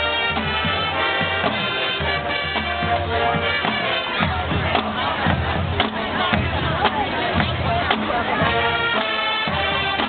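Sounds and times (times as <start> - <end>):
crowd cheering and shouting: 0.0 - 10.0
drums beating steadily: 0.0 - 10.0
marching band playing: 0.0 - 10.0.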